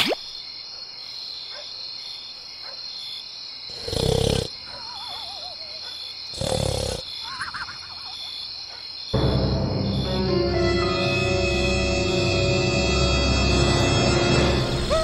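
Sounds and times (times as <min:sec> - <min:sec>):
crickets chirring: 0:00.0 - 0:15.0
cartoon snoring: 0:03.7 - 0:05.5, 0:06.3 - 0:07.2.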